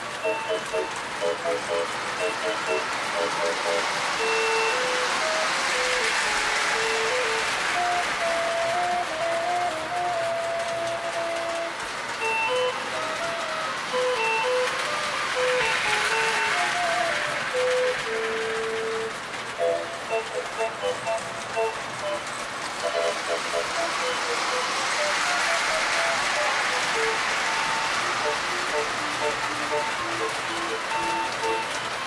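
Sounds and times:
steady hiss: 0.0s - 32.0s
simple electronic toy tune: 27.4s - 32.0s.

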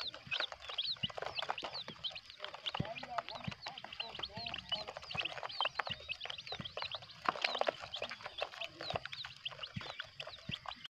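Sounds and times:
chicks peeping: 0.0s - 10.9s.

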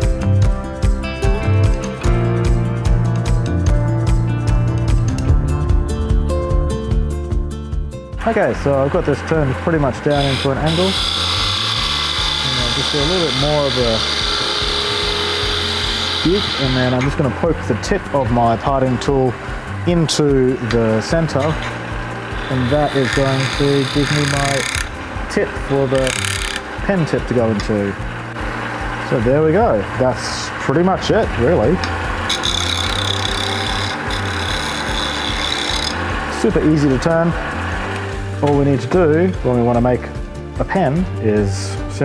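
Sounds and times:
lathe motor hum: 8.3s - 38.4s
tool cutting spinning wood: 8.5s - 38.1s.

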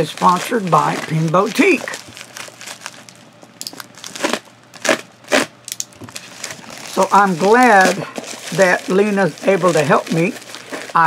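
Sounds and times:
plastic bag tearing and crinkling: 0.0s - 11.0s.

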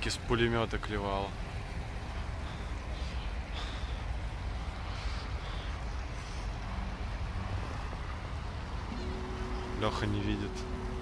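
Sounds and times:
distant street traffic: 0.0s - 11.0s.

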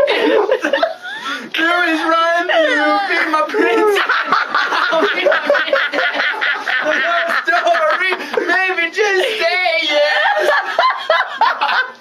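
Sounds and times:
man laughing: 0.0s - 12.0s.

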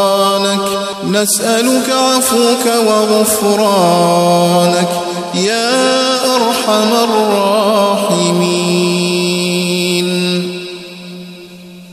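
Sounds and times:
low vocal chant: 0.0s - 11.9s.

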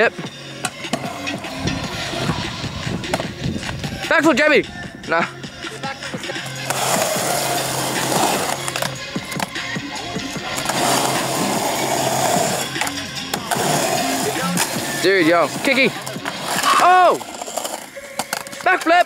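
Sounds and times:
background music: 0.0s - 19.0s
skateboard wheels rolling on concrete: 0.0s - 19.0s.

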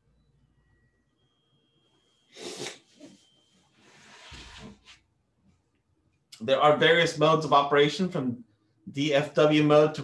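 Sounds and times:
person sneezing: 2.3s - 3.2s.

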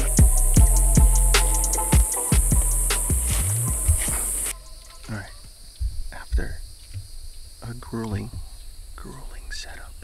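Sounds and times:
background music with drum beat: 0.0s - 4.5s
outdoor ambience: 0.0s - 10.0s.

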